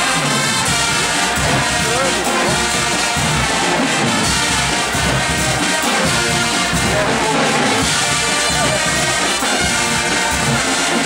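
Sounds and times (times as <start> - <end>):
carnival brass band playing: 0.0 - 11.0.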